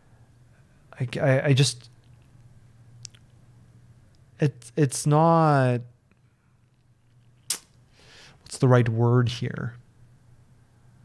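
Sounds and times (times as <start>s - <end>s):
mouth click: 7.5s - 7.8s.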